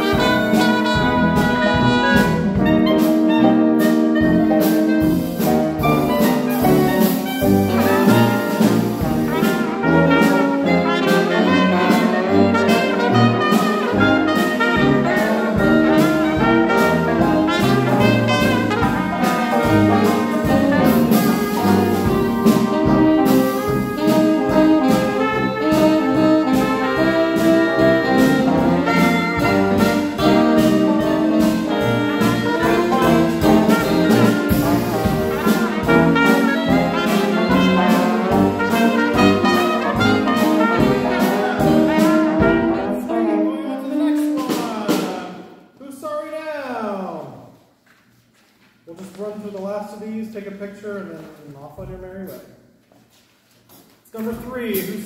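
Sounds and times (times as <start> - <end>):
dixieland jazz band playing: 0.0 - 45.5.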